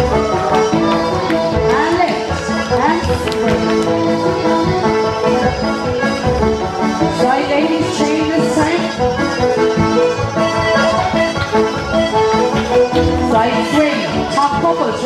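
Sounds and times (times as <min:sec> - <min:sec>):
traditional dance band playing: 0:00.0 - 0:15.0.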